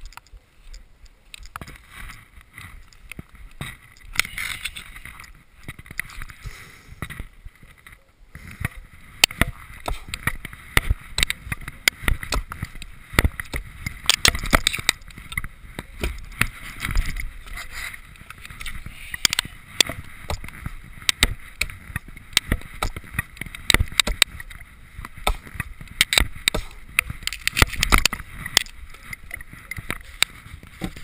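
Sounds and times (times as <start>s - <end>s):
axe knocks on log: 25.2s - 25.6s, 26.2s - 26.8s.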